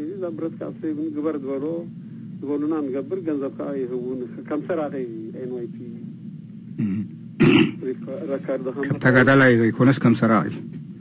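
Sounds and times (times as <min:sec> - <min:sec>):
man speaking: 0:00.0 - 0:06.1, 0:06.8 - 0:10.6
man clearing throat: 0:06.8 - 0:07.8.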